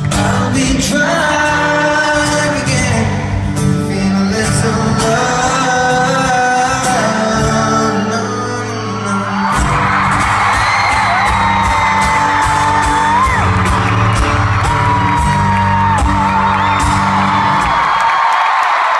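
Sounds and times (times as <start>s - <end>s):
person singing: 0.0s - 10.0s
acoustic guitar chords: 0.0s - 17.9s
crowd screaming and cheering: 5.0s - 18.9s.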